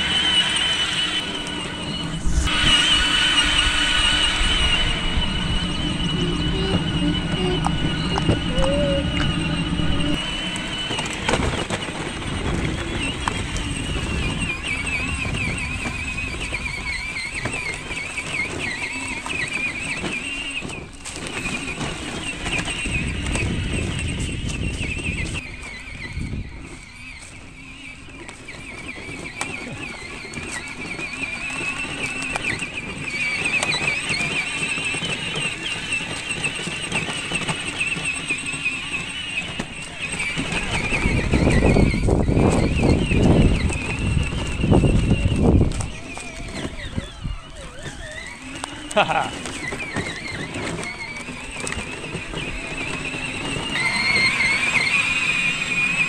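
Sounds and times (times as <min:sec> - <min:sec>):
electric motor whine: 0:00.0 - 0:56.0.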